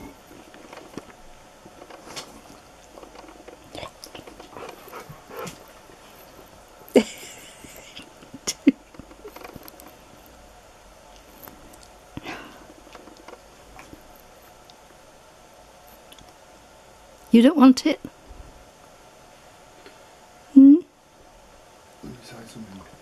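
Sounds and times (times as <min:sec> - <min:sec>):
husky fussing vocal sounds: 0:03.6 - 0:07.1.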